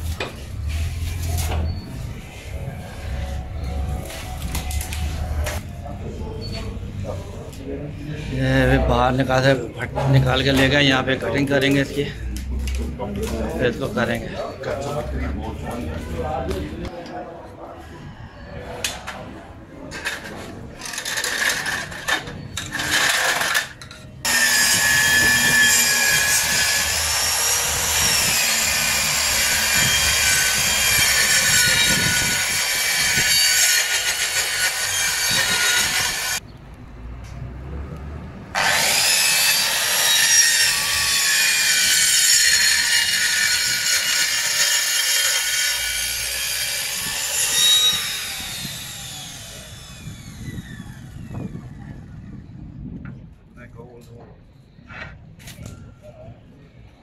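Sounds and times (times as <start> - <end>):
circular saw cutting a board: 20.8 - 36.4, 38.6 - 51.2
saw blade winding down whine: 24.3 - 36.4, 38.6 - 51.3.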